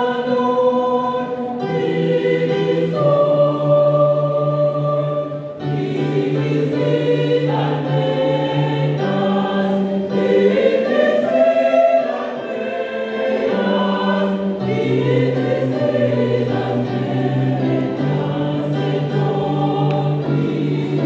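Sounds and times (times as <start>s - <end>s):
choir singing gospel music: 0.0s - 21.0s.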